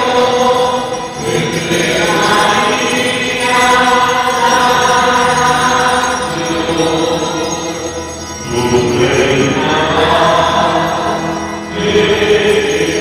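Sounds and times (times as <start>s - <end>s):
choir singing a slow hymn: 0.0s - 13.0s.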